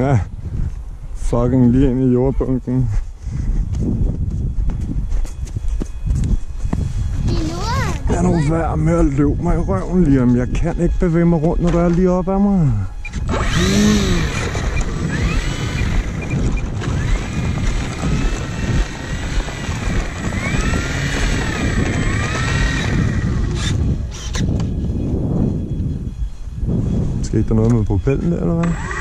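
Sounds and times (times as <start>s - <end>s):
electric motor and propeller whining: 3.0s - 29.0s
rough rumble: 10.3s - 25.8s.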